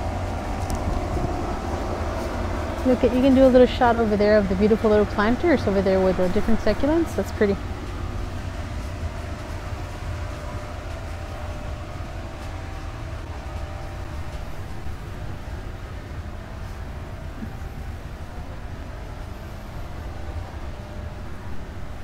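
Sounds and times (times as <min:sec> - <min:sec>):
faint hum: 0:00.0 - 0:22.0
low rumble: 0:00.0 - 0:22.0.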